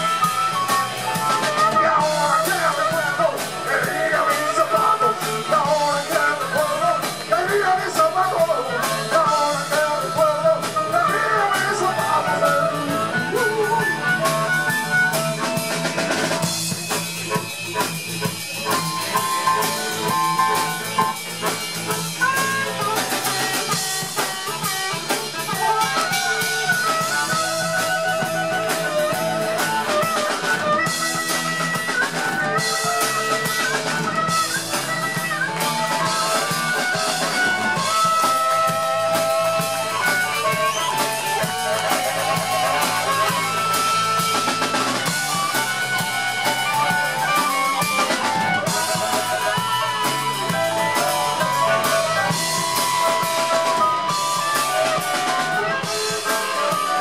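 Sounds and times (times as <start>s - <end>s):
blues-rock band playing: 0.0s - 57.0s
harmonica playing held lines: 0.0s - 57.0s.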